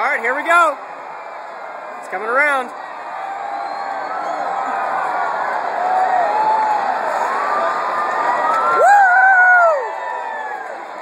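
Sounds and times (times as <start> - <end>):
stadium crowd cheering and yelling: 0.0 - 11.0.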